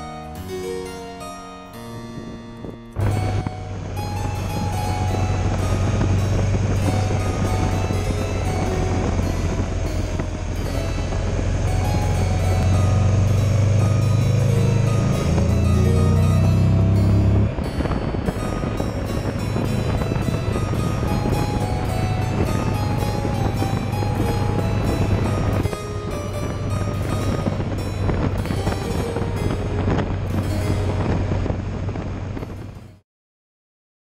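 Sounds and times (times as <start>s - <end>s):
harpsichord music: 0.0s - 33.0s
wind rushing over microphone: 1.9s - 33.0s
motorcycle engine running: 3.0s - 32.6s.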